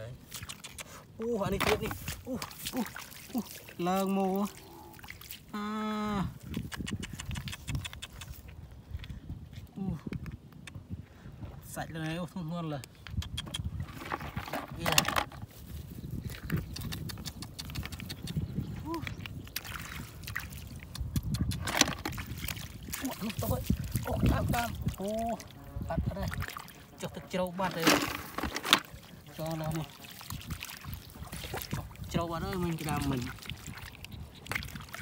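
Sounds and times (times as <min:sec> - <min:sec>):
small splashes in shallow water: 0:00.0 - 0:08.6, 0:15.6 - 0:35.0
person's short vocal sounds: 0:18.8 - 0:19.1.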